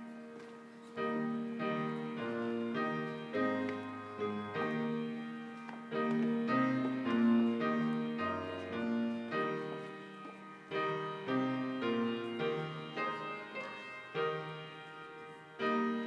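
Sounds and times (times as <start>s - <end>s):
slow piano chords: 0.0s - 16.0s.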